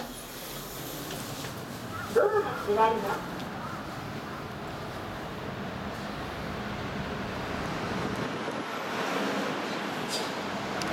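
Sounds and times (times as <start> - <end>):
steady road traffic noise: 0.0 - 10.9.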